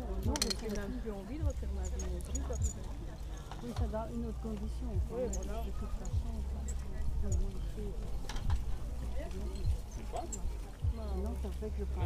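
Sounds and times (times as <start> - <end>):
indistinct voices talking: 0.0 - 12.0
steady low rumble: 0.0 - 12.0.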